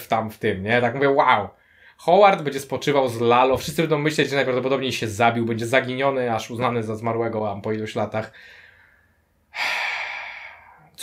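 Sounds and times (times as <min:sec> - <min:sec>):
man breathing into microphone: 0:08.3 - 0:11.0.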